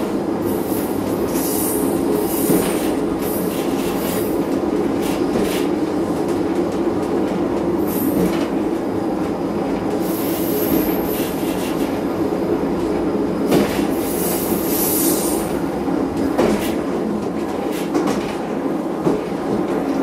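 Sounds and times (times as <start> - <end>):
diesel train engine drone: 0.0 - 20.0
train wheels squealing: 10.0 - 11.9, 14.0 - 15.5.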